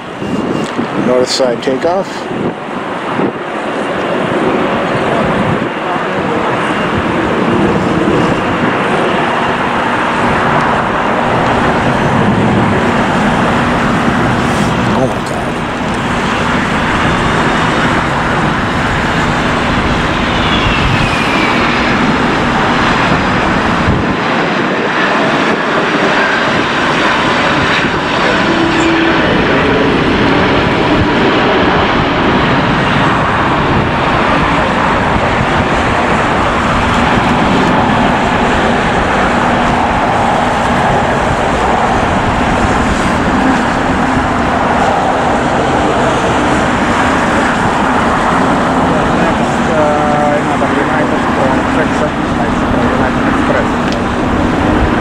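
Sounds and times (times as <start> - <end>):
jet engines roaring: 0.0 - 55.0
faint falling whine: 7.6 - 24.1.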